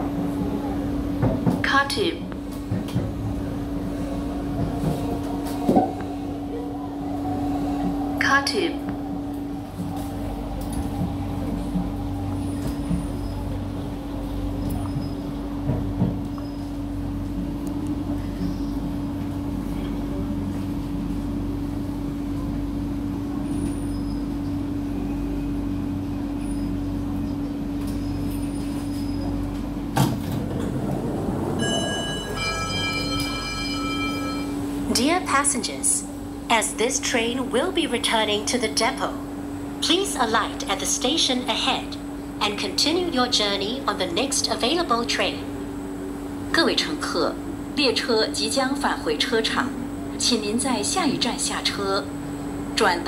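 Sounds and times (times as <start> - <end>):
electrical hum: 0.0 - 53.0
low running rumble of train: 0.0 - 53.0.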